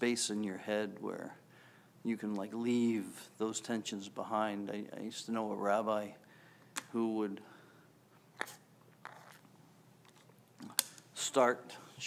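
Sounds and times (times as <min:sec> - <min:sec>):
man breathing: 0:01.5 - 0:02.0, 0:06.2 - 0:06.8, 0:07.4 - 0:08.0.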